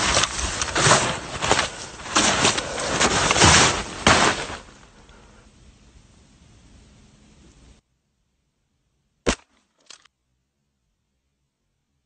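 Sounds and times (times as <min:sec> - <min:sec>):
rifle shot: 0:09.2 - 0:10.0.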